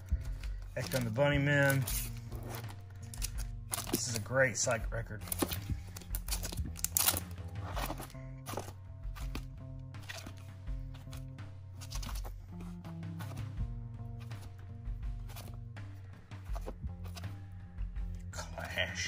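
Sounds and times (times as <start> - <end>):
background music with bass notes: 0.0 - 19.0
record sleeves flipped in a box: 0.7 - 4.3, 5.2 - 13.6, 15.2 - 15.6, 16.4 - 17.4.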